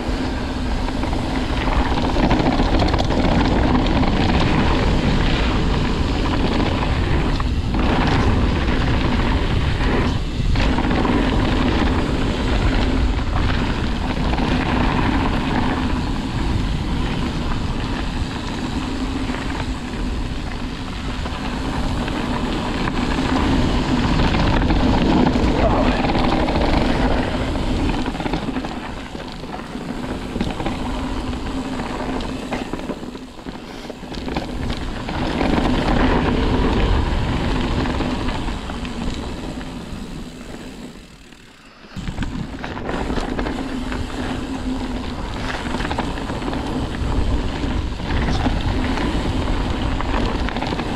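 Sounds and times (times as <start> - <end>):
wind on microphone: 0.0 - 40.4, 42.0 - 50.9
bike rattling over bumps: 0.0 - 50.9
bike tyres on dirt: 0.0 - 50.9.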